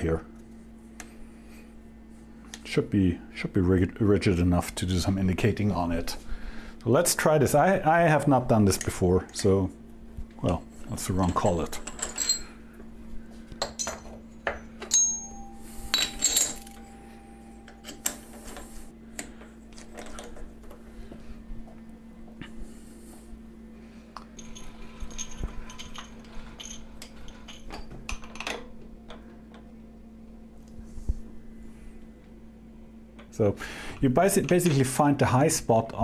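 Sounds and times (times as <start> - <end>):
steady low hum: 0.0 - 36.0
small metal parts clinking: 10.9 - 12.6, 13.6 - 16.9, 24.4 - 28.6
short metallic rings: 13.8 - 18.8.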